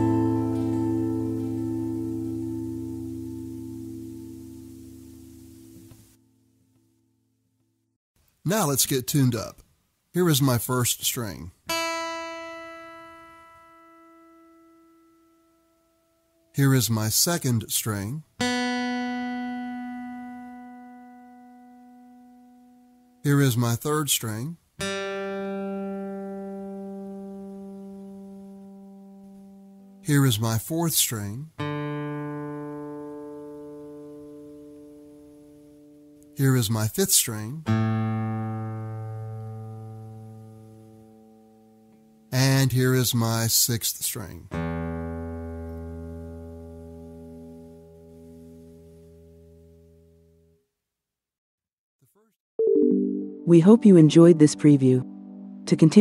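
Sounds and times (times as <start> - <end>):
plucked guitar string ringing: 0.0 - 4.8.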